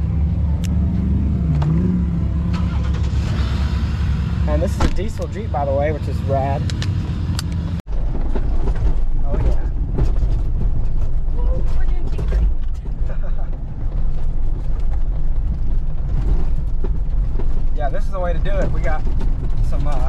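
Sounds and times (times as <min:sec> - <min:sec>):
engine and tyres rumbling: 0:00.0 - 0:20.0
vehicle body rattles: 0:04.5 - 0:05.7, 0:07.9 - 0:20.0.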